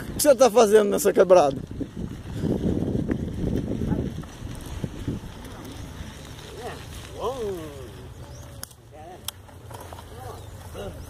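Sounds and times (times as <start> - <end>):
wind rumble on microphone: 0.0 - 7.7.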